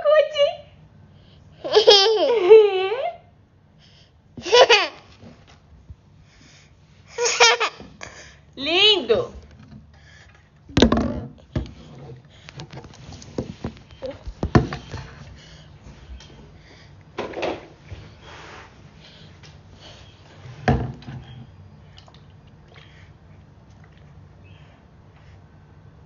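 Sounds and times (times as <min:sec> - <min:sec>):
knocks on a hard tabletop: 0:10.8 - 0:11.7.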